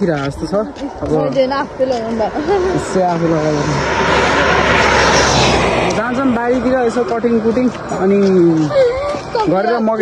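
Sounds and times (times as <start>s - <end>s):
vehicle passing by: 0.7s - 10.0s.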